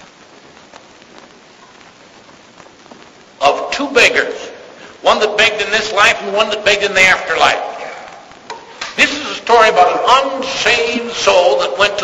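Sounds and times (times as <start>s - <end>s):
faint crackles: 0.0s - 12.0s
recording hiss: 0.0s - 12.0s
speech: 3.4s - 8.2s, 9.0s - 12.0s.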